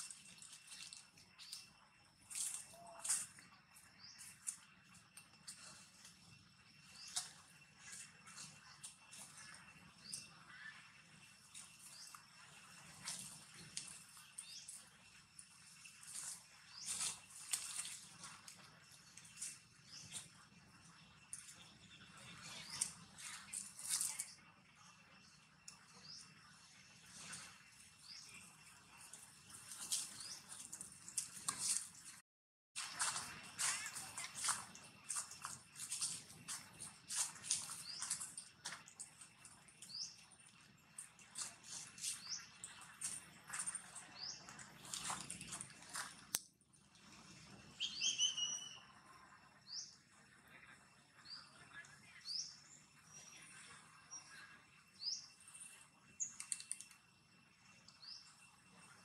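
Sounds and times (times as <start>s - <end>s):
small animals chirping and squeaking: 0.0s - 24.6s, 32.8s - 46.3s, 47.2s - 49.0s.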